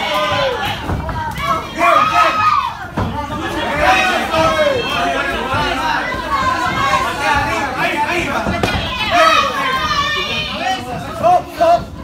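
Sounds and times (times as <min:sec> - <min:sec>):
crowd shouting and talking: 0:00.0 - 0:12.0.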